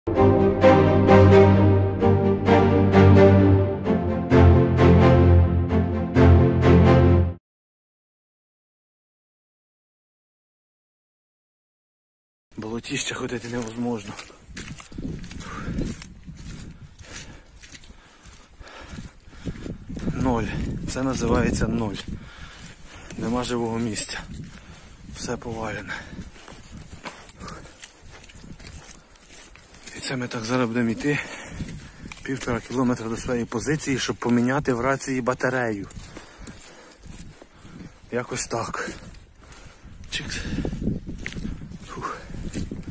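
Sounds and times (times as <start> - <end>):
footsteps squelching through mud: 12.6 - 42.9.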